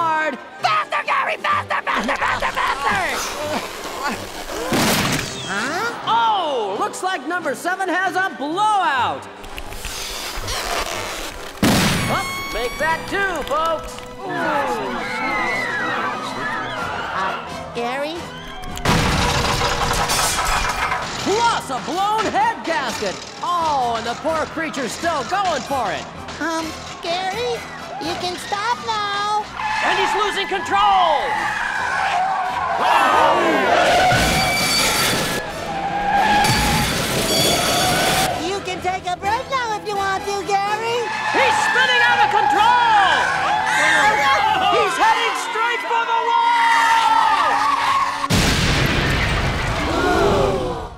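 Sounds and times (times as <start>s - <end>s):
cartoon voices screaming: 49.8s - 50.9s.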